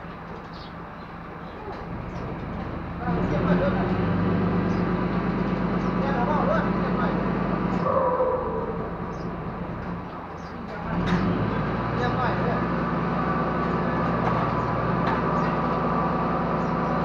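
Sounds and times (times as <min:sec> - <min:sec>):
diesel crane engine revving: 0:00.0 - 0:17.0
workers' voices: 0:01.2 - 0:17.0.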